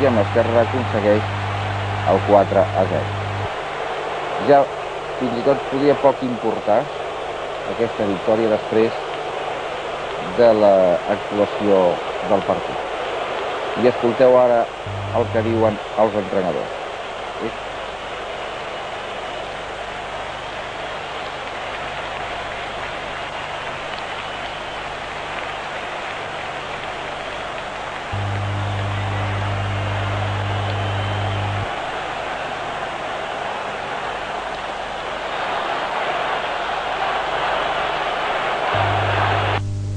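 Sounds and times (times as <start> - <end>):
low steady recording hum: 0.0 - 3.8, 14.8 - 16.7, 28.0 - 31.8
stadium crowd noise: 0.0 - 39.7.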